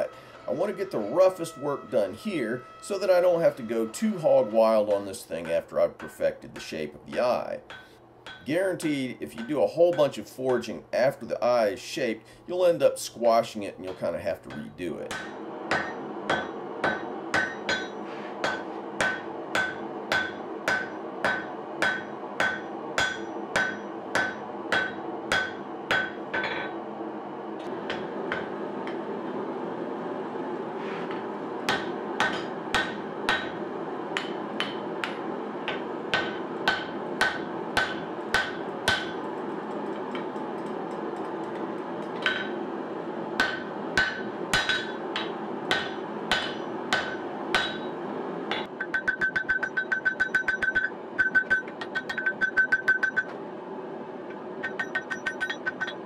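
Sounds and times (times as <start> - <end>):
hammer striking steel on anvil: 0.0 - 10.7, 13.9 - 26.8, 27.8 - 29.1, 31.1 - 33.6, 34.2 - 42.7, 43.4 - 53.4, 54.3 - 56.0
steady background noise: 0.0 - 56.0.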